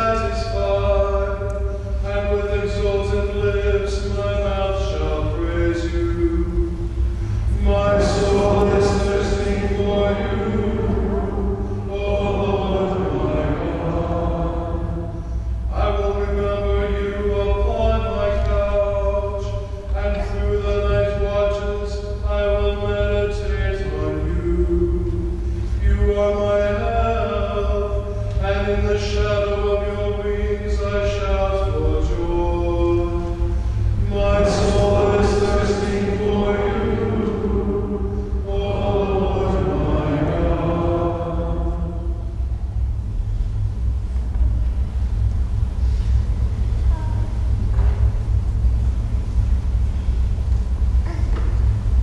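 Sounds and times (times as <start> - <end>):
person chanting in long notes: 0.0 - 42.8
sustained organ chords: 0.0 - 52.0.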